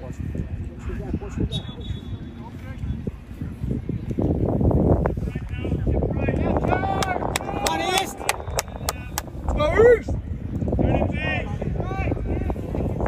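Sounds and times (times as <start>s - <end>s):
players shouting and calling: 5.2s - 13.0s.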